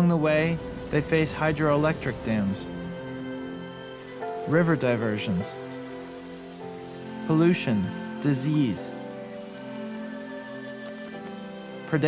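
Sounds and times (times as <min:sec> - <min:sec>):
soft music of held chords: 0:00.0 - 0:12.0.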